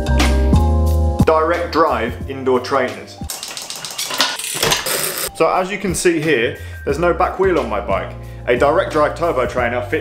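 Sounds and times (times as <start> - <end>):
metallic clicking and rattling: 3.3 - 5.3.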